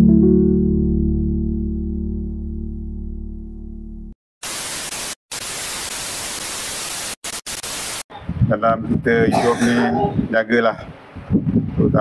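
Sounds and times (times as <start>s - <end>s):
held music chord: 0.0s - 4.1s
television static hiss: 4.4s - 8.0s.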